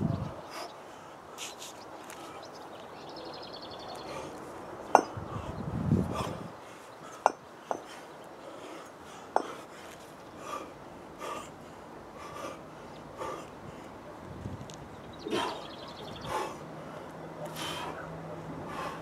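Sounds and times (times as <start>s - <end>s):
man breathing hard: 5.1s - 14.0s, 15.2s - 19.0s.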